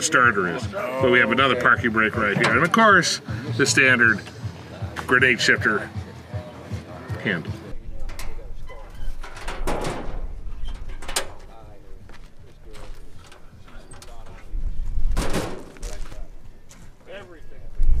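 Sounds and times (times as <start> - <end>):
faint voices talking: 0.0 - 18.0
steel hood shutting with clank: 8.0 - 11.5, 15.1 - 15.8
hood latch being worked: 8.0 - 11.6.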